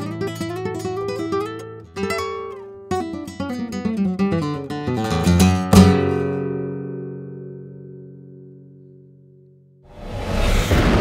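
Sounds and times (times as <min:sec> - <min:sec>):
guitar chord ringing: 0:03.2 - 0:09.8.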